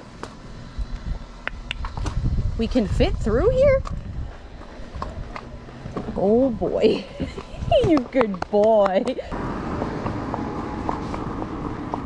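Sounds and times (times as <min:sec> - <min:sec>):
horse walking on dirt: 0:03.8 - 0:12.0
sharp hoof clicks: 0:07.0 - 0:12.0.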